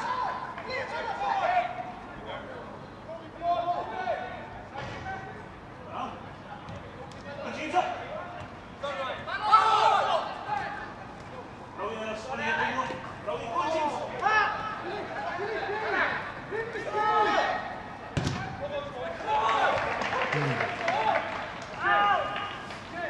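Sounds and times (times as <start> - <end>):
players shouting: 7.5 - 11.2, 12.2 - 23.0.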